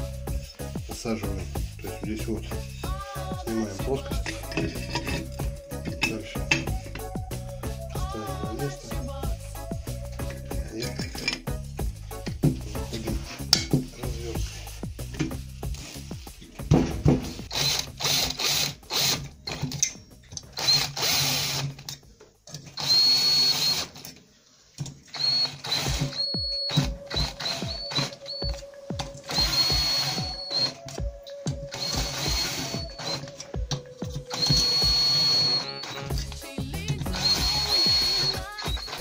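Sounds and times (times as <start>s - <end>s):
cordless drill whine: 17.2s - 19.6s, 20.4s - 21.8s, 22.7s - 24.0s, 25.1s - 36.3s, 36.9s - 39.0s.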